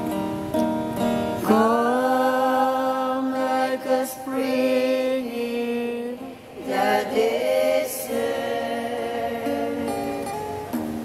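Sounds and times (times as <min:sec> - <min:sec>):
voices singing worship song: 0:01.4 - 0:10.7.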